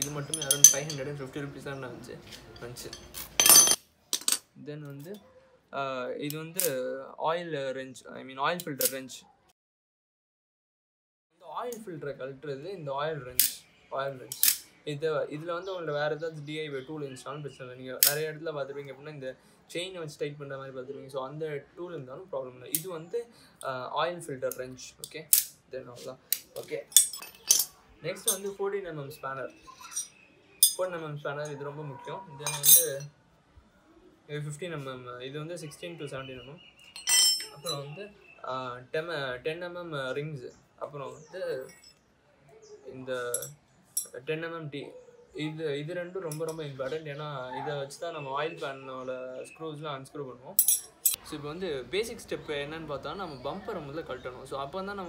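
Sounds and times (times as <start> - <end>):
steel tools clinking: 0.0 - 1.6, 2.2 - 5.2, 14.3 - 14.7, 18.0 - 18.2, 26.3 - 28.6, 29.7 - 30.9, 32.4 - 33.1, 36.9 - 38.0, 41.6 - 42.0, 43.3 - 44.2, 46.3 - 46.6, 50.6 - 51.2.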